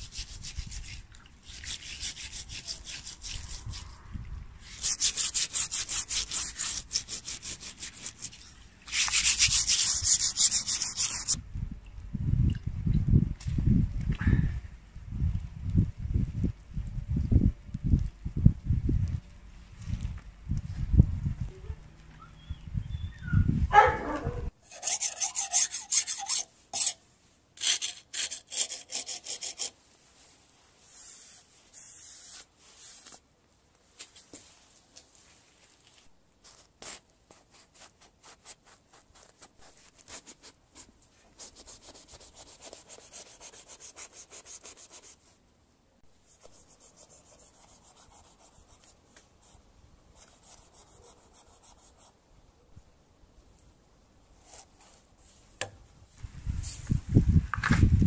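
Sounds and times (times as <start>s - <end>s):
knife scraping hide: 0.0s - 4.0s, 4.6s - 11.4s, 24.6s - 27.0s, 27.6s - 29.8s.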